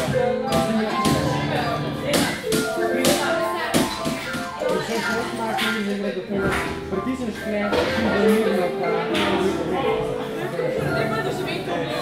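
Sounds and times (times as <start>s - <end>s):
digital piano music: 0.0s - 12.0s
sharp percussive taps: 2.1s - 6.8s.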